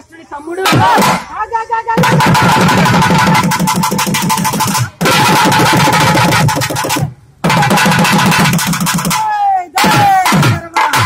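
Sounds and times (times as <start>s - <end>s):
rapid barrel drum drumming: 2.0s - 11.0s.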